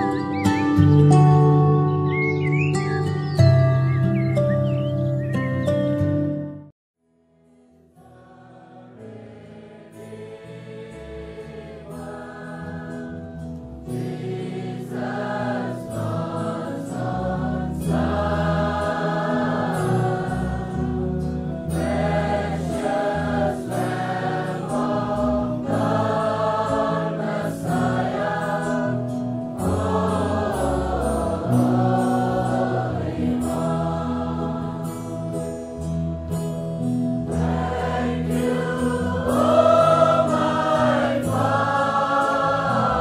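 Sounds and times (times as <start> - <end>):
choir singing held chords: 7.5 - 36.5, 37.2 - 43.0.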